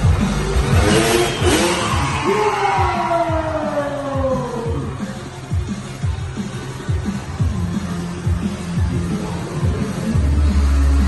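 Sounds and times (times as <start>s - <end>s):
motorcycle engine revving: 0.0s - 3.4s
show music with bass beat: 0.0s - 11.0s.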